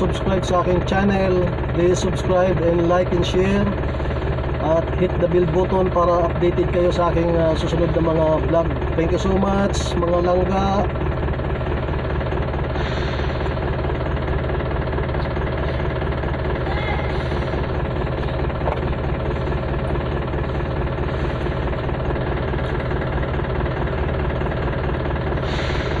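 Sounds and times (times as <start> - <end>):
engine idling with rattle: 0.0 - 26.0.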